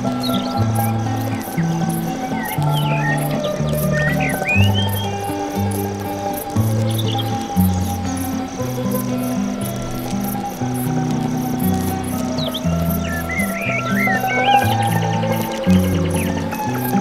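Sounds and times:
bird chirping: 0.0s - 17.0s
crickets chirping: 0.0s - 17.0s
music of slow low held notes: 0.0s - 17.0s.

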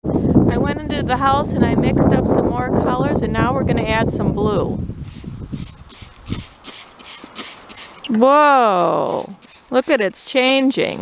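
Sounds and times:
spray bottle squirting: 5.0s - 11.0s.

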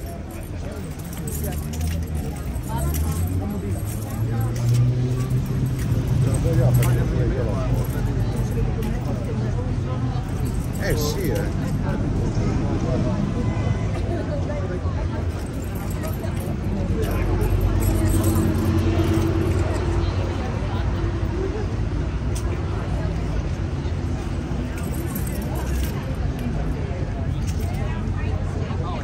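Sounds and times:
background voices: 0.0s - 29.0s
people talking: 0.0s - 29.0s
vehicle engine hum: 0.0s - 29.0s.

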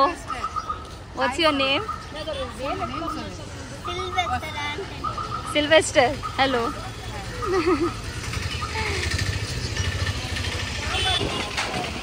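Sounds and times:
street traffic: 0.0s - 12.0s
vehicle engine rumbling: 0.0s - 12.0s.

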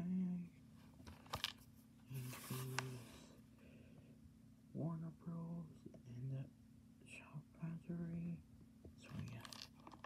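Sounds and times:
steady low hum: 0.0s - 10.0s
person speaking quietly: 2.1s - 3.3s, 9.0s - 9.6s.

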